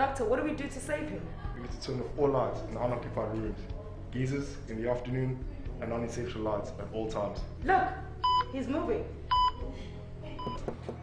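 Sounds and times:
heart monitor beeping: 0:08.2 - 0:08.5, 0:09.3 - 0:09.7, 0:10.4 - 0:10.7.

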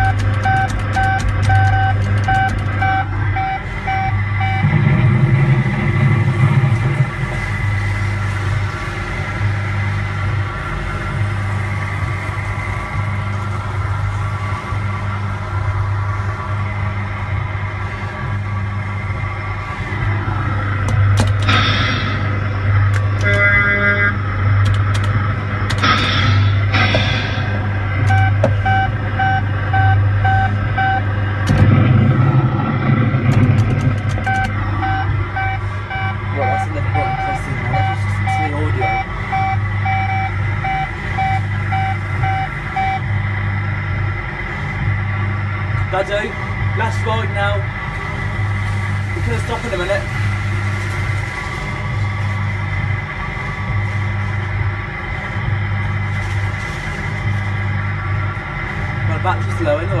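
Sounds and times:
reversing alarm beeps: 0:00.0 - 0:07.0, 0:25.8 - 0:31.1, 0:34.2 - 0:43.2
electronic ride music: 0:00.0 - 1:00.0
pulsing electronic hum: 0:00.0 - 1:00.0.

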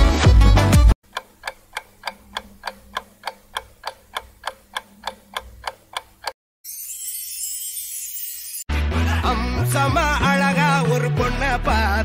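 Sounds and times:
clock ticking: 0:01.0 - 0:06.4
song background music: 0:08.7 - 0:12.0.

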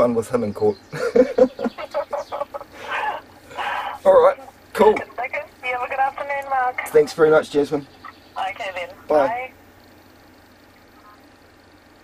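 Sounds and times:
man laughing: 0:00.9 - 0:04.0.

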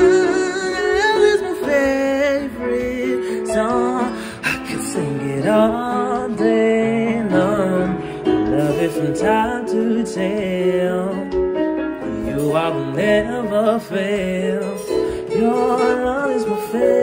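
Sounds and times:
person singing with vibrato: 0:00.0 - 0:17.0
soft music backing: 0:00.0 - 0:17.0.

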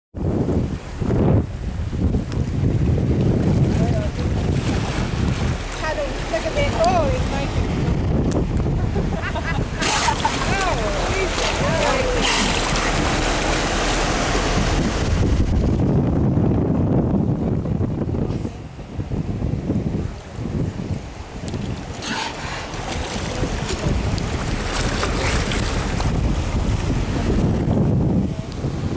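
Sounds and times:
wind buffeting microphone: 0:00.2 - 0:28.9
water splashing along boat hull: 0:00.5 - 0:19.1, 0:19.7 - 0:28.9.

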